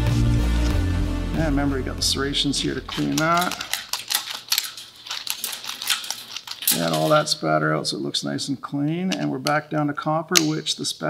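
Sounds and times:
pliers scraping metal nozzle: 2.6 - 7.3.

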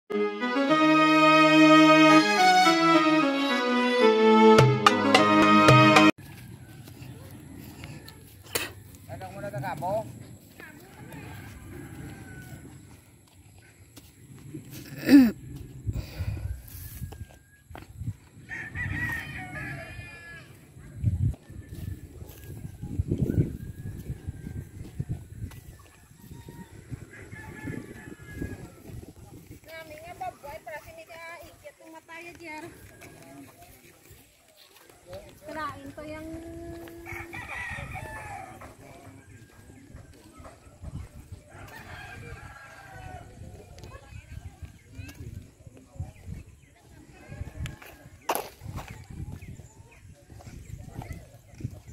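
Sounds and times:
rooster crowing: 10.9 - 12.8, 18.4 - 20.6, 26.2 - 29.0, 36.7 - 38.8.

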